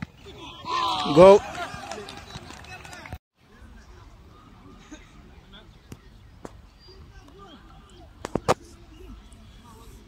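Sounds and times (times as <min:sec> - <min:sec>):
distant players talking and calling: 0:00.0 - 0:10.0.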